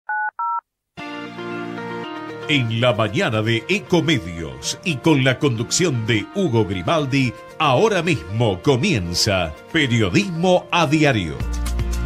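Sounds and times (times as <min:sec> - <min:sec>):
telephone keypad tones: 0:00.1 - 0:00.6.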